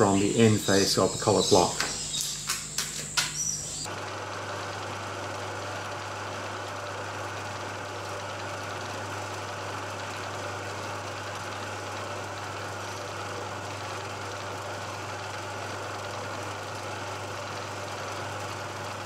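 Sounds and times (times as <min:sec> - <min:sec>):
milling machine humming: 0:00.0 - 0:19.0.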